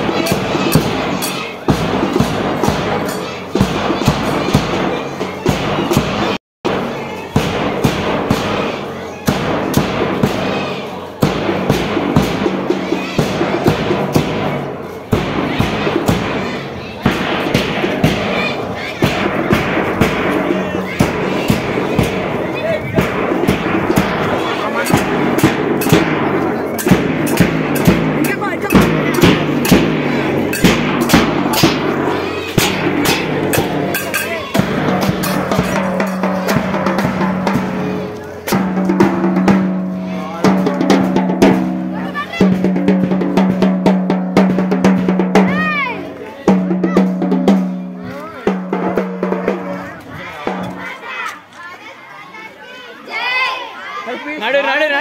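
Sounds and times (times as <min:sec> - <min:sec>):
marching drum beat: 0:00.0 - 0:51.0
crowd talking: 0:00.0 - 0:55.0.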